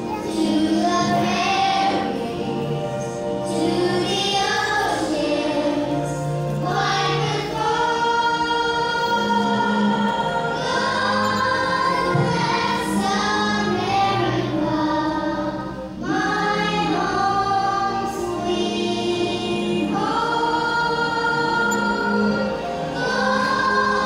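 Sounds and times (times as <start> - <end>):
children singing together: 0.0 - 24.0
musical accompaniment: 0.0 - 24.0.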